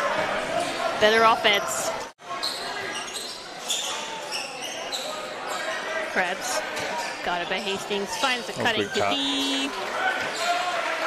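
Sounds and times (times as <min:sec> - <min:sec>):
murmur of voices: 0:00.0 - 0:11.0
sneaker squeaks: 0:02.4 - 0:05.7.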